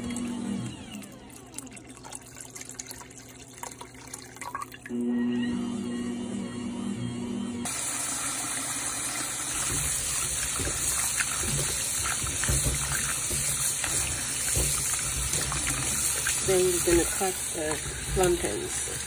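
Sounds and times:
tap water running into metal bowl: 0.9 - 5.0, 7.7 - 19.0.

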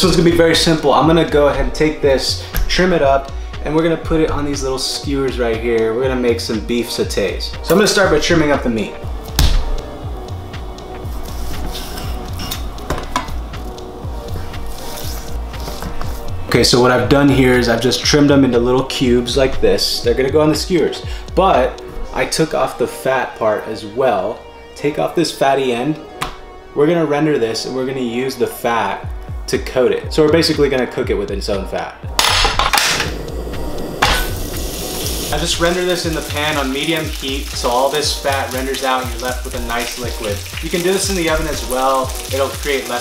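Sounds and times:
background music with beat: 0.0 - 43.0
stove igniter click: 32.2 - 33.2
gas stove hissing: 32.8 - 43.0.

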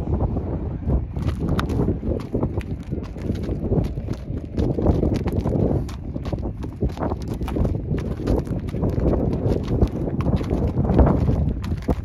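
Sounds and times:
horse hooves on gravel: 1.1 - 12.0.

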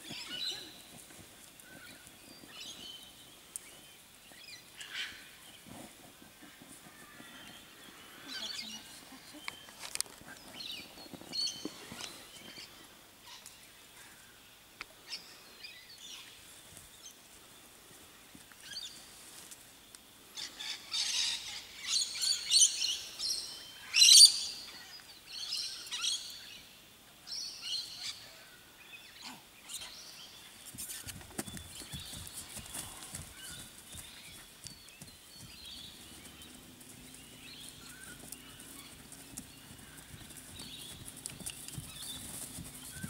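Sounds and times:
wild birds chirping: 0.0 - 43.0.

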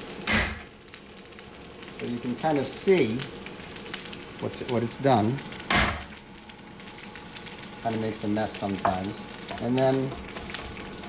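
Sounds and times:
food frying faintly in wok: 0.0 - 11.0
cleaver whacking on wooden board: 0.3 - 0.7, 5.7 - 6.1.

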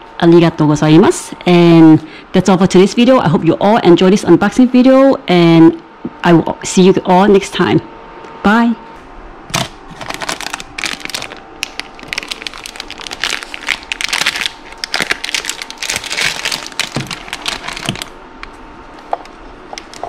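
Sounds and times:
plastic packaging crinkling: 9.5 - 18.2, 19.0 - 20.0.

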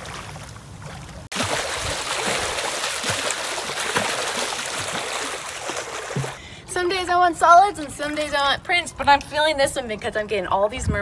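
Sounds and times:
swimmer splashing water: 0.0 - 8.6.

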